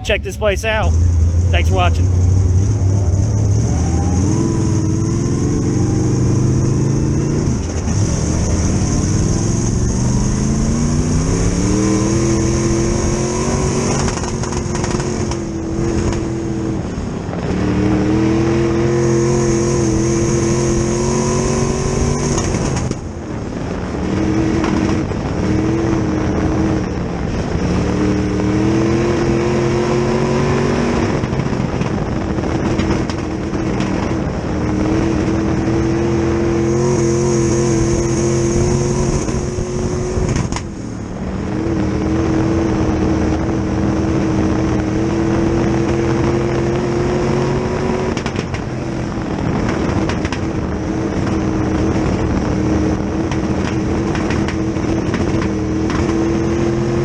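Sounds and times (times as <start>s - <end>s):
race car engine revving: 0.0s - 23.0s, 23.9s - 57.0s.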